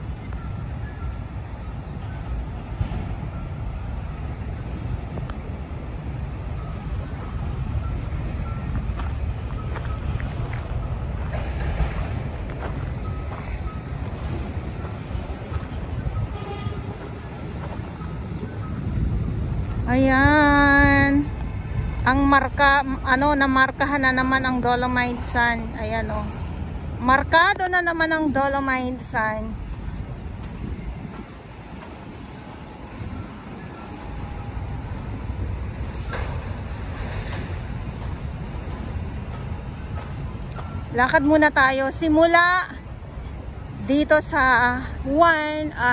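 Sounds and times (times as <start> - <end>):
low outdoor rumble: 0.0 - 45.9
wind buffeting microphone: 0.0 - 45.9.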